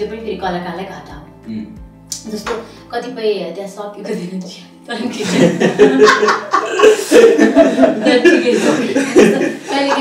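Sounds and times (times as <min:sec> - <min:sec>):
people laughing together: 0:04.9 - 0:10.0.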